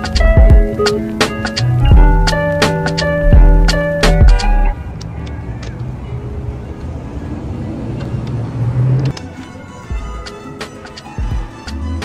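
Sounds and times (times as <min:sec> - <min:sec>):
background music: 0:00.0 - 0:04.8, 0:09.1 - 0:12.0
vehicle engine rumble: 0:00.0 - 0:10.2
street traffic noise: 0:00.0 - 0:12.0.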